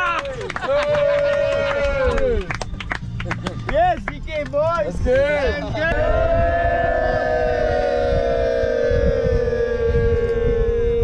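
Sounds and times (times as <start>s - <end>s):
group of people cheering: 0.0s - 2.6s, 5.8s - 11.0s.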